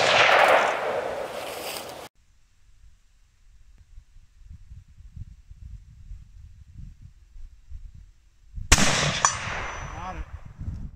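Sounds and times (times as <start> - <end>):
gunshot with long echo: 0.0 - 1.3, 8.7 - 10.0.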